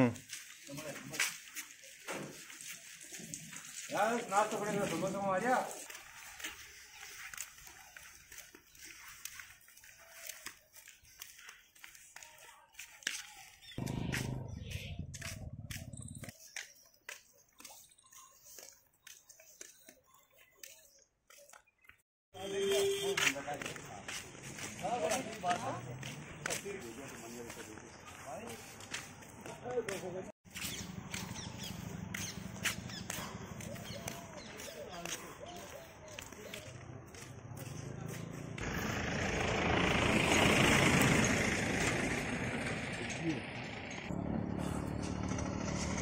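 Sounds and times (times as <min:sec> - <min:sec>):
outdoor background sound: 0:00.0 - 0:46.0.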